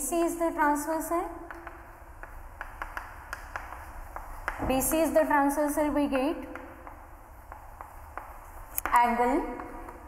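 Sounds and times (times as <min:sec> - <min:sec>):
chalk tapping on blackboard: 0:00.7 - 0:10.0.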